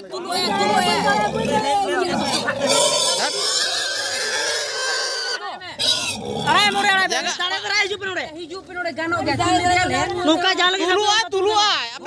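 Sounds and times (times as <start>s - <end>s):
pig squealing: 0.6s - 6.8s.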